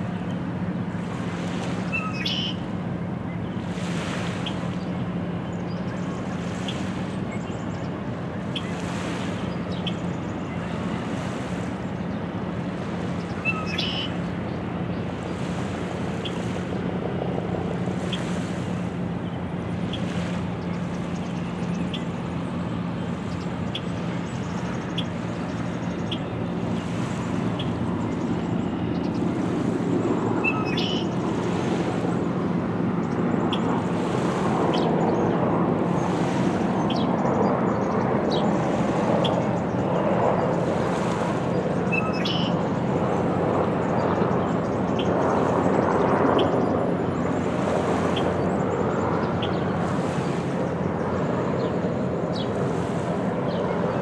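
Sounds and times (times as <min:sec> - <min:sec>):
low engine hum: 0:00.0 - 0:54.0
water noise: 0:00.0 - 0:54.0
wind: 0:00.0 - 0:54.0.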